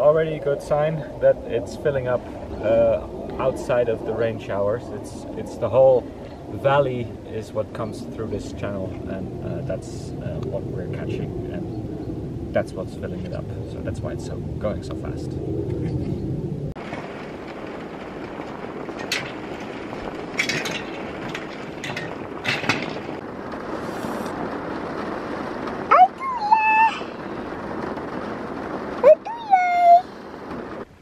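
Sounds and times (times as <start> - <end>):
rain on wooden deck: 0.0 - 14.9, 16.7 - 31.0.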